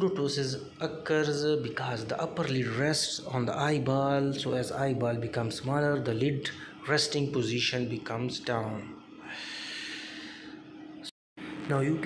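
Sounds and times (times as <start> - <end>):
person breathing close to microphone: 9.2 - 10.7.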